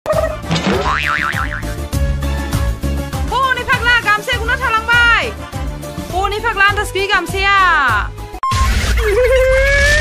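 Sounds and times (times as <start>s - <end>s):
comic boing sound effect: 0.1s - 1.7s.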